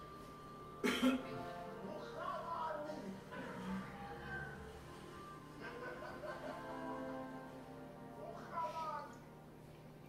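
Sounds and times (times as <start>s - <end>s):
faint background music: 0.0s - 10.0s
man coughing: 0.8s - 1.4s.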